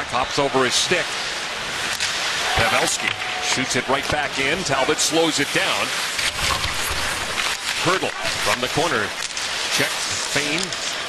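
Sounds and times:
crowd noise: 0.0 - 11.0
skates and sticks on ice: 0.1 - 11.0
commentator speaking: 7.8 - 9.1, 9.7 - 10.8.

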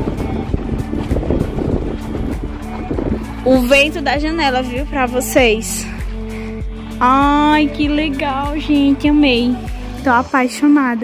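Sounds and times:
wind buffeting microphone: 0.0 - 9.6
background music: 0.0 - 11.0.

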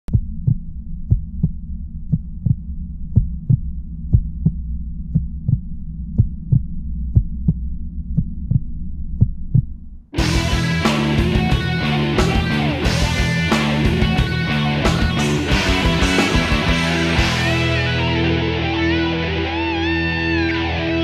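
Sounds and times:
heartbeat thumps: 0.1 - 14.4
steady low hum: 0.1 - 15.1.

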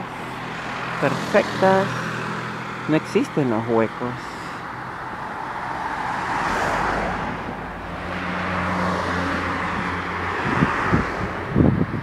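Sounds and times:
motorhome driving past: 0.0 - 12.0.

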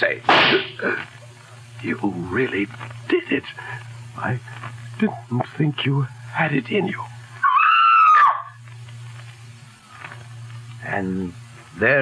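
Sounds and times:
low hum of radio recording: 0.0 - 12.0
high-pitched scream: 7.3 - 8.6.

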